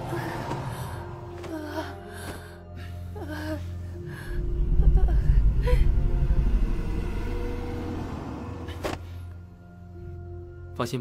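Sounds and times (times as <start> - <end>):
low rumbling drone: 2.9 - 10.5.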